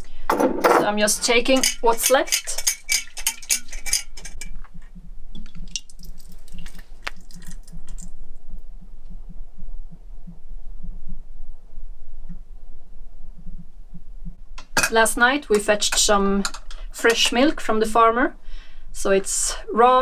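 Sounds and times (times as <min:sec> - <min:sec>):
glass jars clinking: 0:01.4 - 0:04.5
low soft throbbing: 0:08.1 - 0:15.4.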